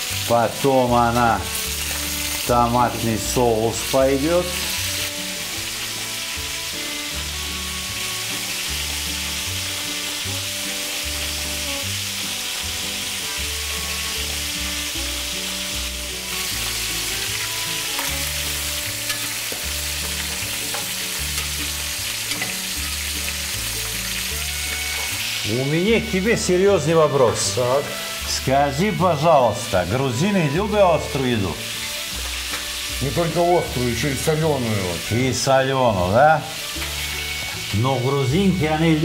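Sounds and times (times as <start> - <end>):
background music bass line: 0.0 - 39.0
chicken sizzling in hot oil: 0.0 - 39.0.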